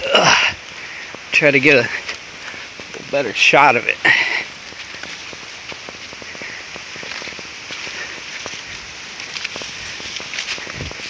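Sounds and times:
steady hiss: 0.0 - 11.0
handheld camera rustling: 4.4 - 11.0.

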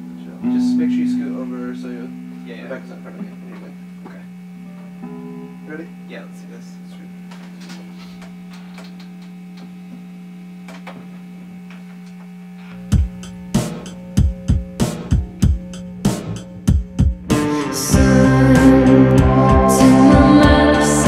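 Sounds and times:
keyboard chords: 0.0 - 7.3, 12.8 - 21.0
amplifier hum: 0.0 - 21.0
electric guitar chords: 0.0 - 21.0
rhythmic sharp hits: 12.8 - 21.0.

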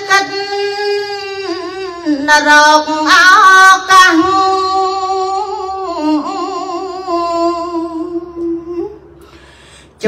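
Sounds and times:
woman chanting: 0.0 - 9.1.

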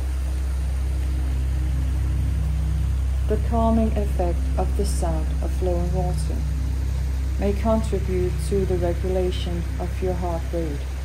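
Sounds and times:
steady low hum: 0.0 - 11.0
stream running over rocks: 0.0 - 11.0.

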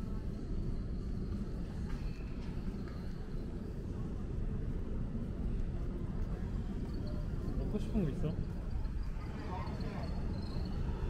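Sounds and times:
city street rumble: 0.0 - 11.0.

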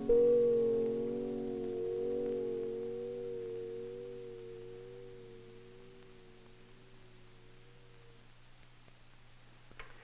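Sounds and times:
piano chord ringing: 0.0 - 7.8.

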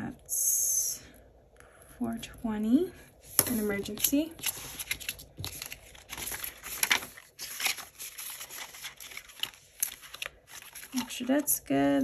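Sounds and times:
plastic and paper crinkling: 3.3 - 11.9.

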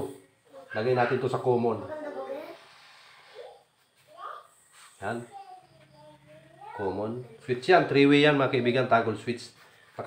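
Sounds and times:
man talking: 0.0 - 1.9, 6.8 - 10.0.

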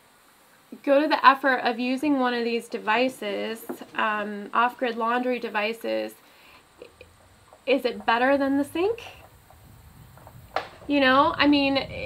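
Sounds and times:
low background rumble: 0.0 - 12.0
woman talking: 0.7 - 6.2, 7.6 - 9.2, 10.9 - 12.0.

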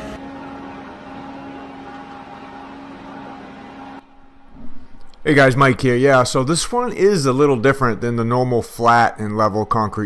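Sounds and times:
truck engine humming: 0.0 - 4.6.

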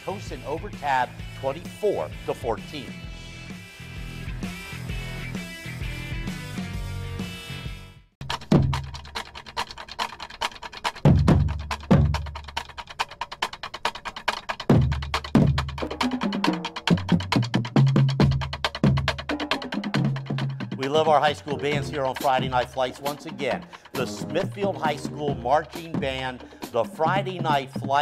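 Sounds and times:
fast snare drum strokes: 0.0 - 3.6, 8.2 - 28.0
low pitched notes: 20.0 - 27.1.

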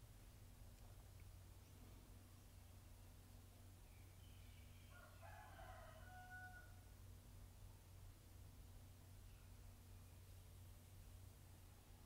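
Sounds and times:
steady low hum: 0.0 - 6.0, 6.6 - 12.0.

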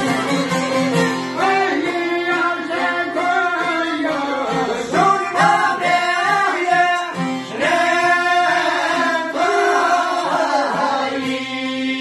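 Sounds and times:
plucked lutes: 0.0 - 12.0
men singing folk song: 1.3 - 12.0.

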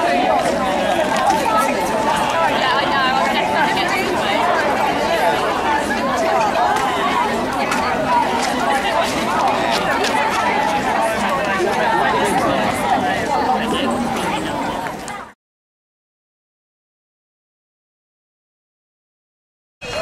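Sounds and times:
crowd chattering: 0.0 - 15.4.

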